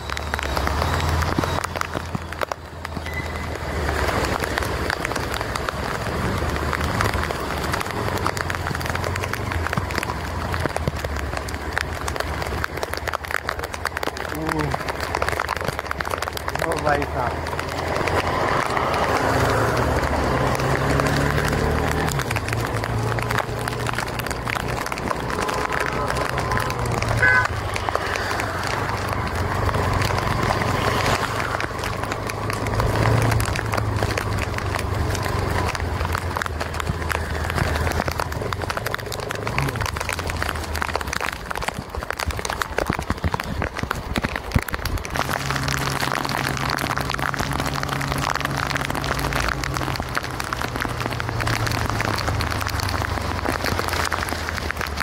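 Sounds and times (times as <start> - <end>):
motorcycle engine hum: 0.0 - 55.0
wind and rain rushing: 0.0 - 55.0.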